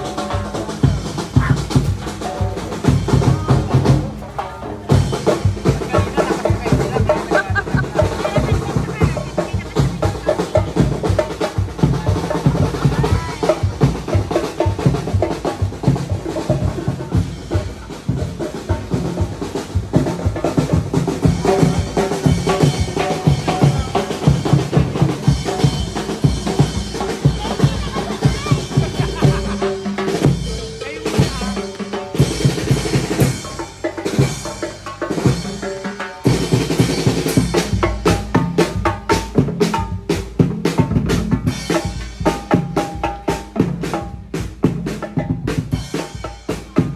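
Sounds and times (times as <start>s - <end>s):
pitched music: 0.0s - 44.4s
parade drums marching beat: 0.0s - 46.9s.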